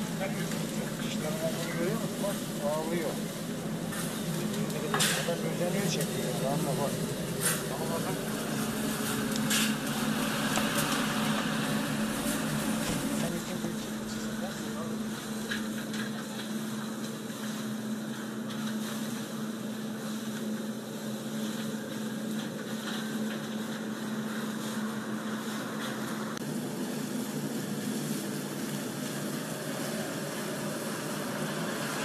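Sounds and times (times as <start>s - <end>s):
low machine hum: 0.0s - 32.0s.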